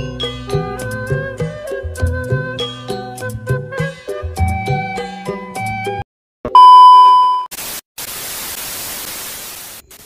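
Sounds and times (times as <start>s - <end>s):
test-tone beep: 6.5s - 7.5s
tv static hiss: 7.5s - 10.0s.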